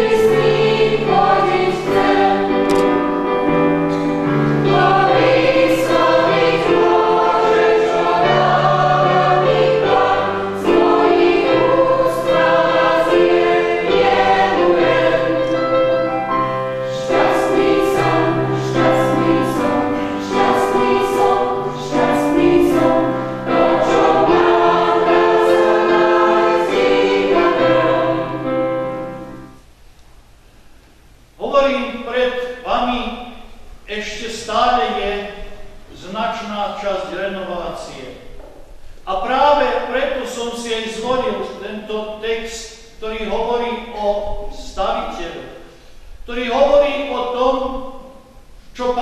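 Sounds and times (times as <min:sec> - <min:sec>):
mixed choir singing: 0:00.0 - 0:29.6.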